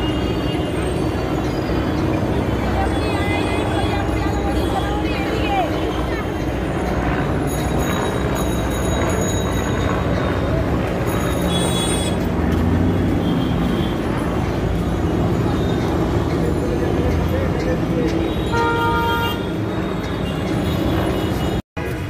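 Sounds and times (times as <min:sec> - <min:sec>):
traffic engines rumbling: 0:00.0 - 0:22.0
high-pitched ring: 0:07.4 - 0:11.8
vehicle horn honking: 0:11.4 - 0:12.3, 0:18.3 - 0:21.6.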